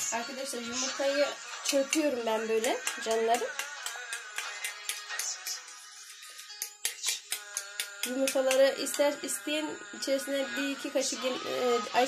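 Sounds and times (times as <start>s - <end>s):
background music: 0.0s - 12.0s
fork whisking eggs in bowl: 7.0s - 9.2s.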